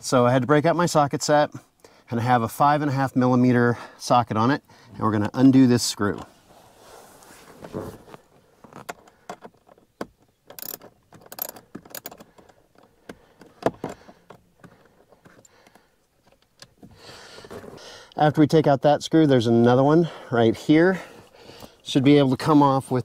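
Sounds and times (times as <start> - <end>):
ratchet clicking: 10.5 - 12.2.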